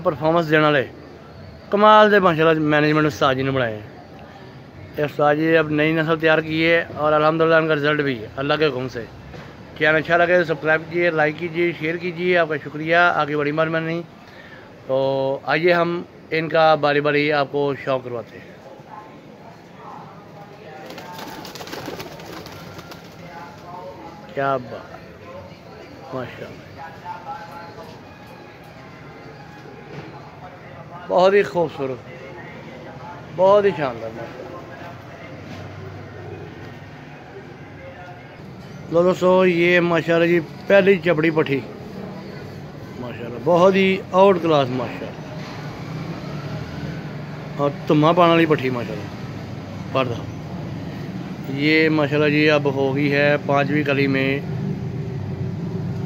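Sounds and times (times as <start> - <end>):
steady background noise: 0.0 - 56.0
pigeon wings flapping: 20.8 - 23.7.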